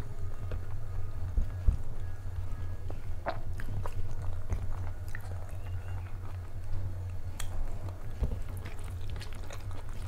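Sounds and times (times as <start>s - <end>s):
low steady hum: 0.0s - 10.0s
person chewing: 3.1s - 10.0s.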